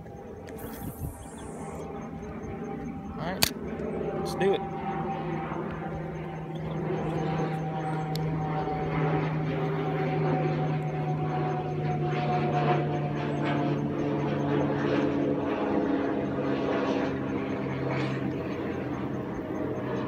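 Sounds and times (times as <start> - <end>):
engine running: 0.0 - 13.2
higher tone: 0.4 - 3.2.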